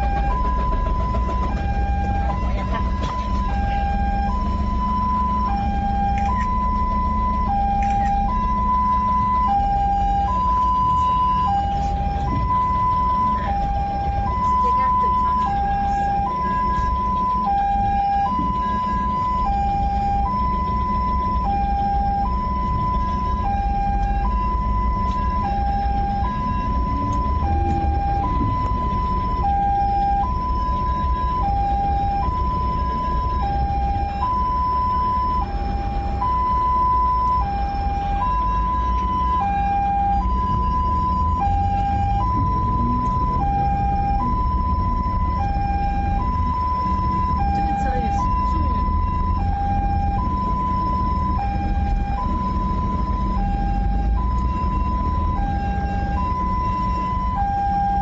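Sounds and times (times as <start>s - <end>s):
engine and road noise: 0.0s - 58.0s
two-tone ambulance siren: 0.0s - 58.0s.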